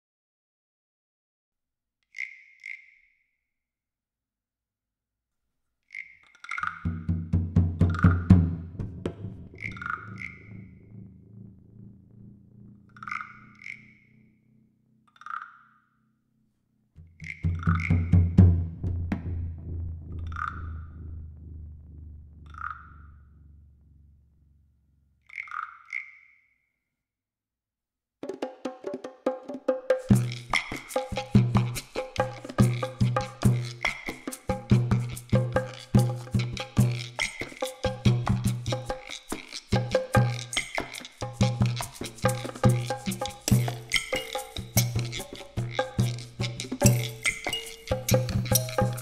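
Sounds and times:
high ringing percussion strikes: 0:30.1 - 0:49.0.

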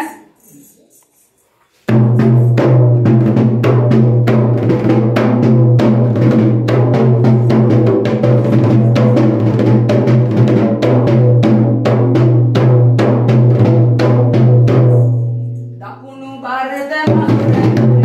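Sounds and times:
rapid ritual drumming: 0:01.9 - 0:15.3, 0:17.0 - 0:18.0.

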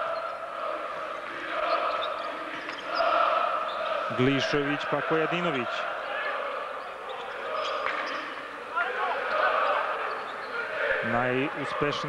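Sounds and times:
arena crowd chanting: 0:00.0 - 0:12.0.

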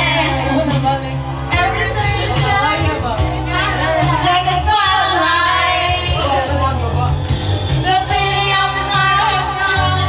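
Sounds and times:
instrumental accompaniment with bass: 0:00.0 - 0:10.0.

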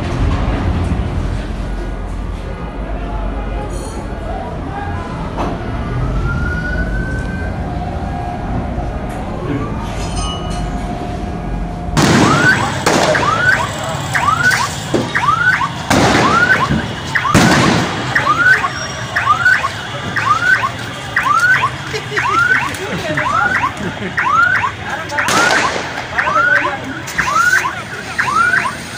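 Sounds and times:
street noise: 0:00.0 - 0:28.9
siren whooping: 0:05.6 - 0:10.0, 0:10.9 - 0:28.9.

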